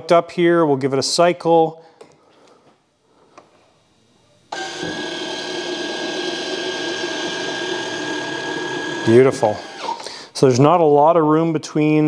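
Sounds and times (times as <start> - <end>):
landing gear motor whirring: 4.5 - 10.0.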